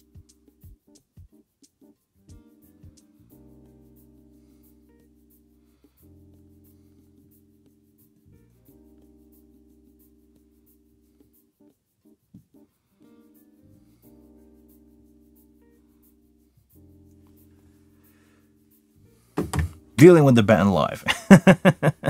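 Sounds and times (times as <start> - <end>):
soft keyboard chords: 0.0 - 22.0
man's voice: 20.0 - 21.2.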